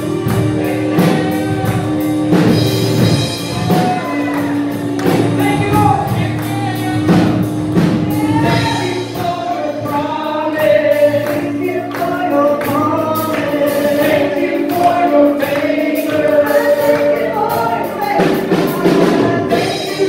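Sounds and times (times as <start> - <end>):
woman and man singing: 0.0 - 2.4, 3.4 - 20.0
drums: 0.0 - 20.0
keyboard: 0.0 - 20.0.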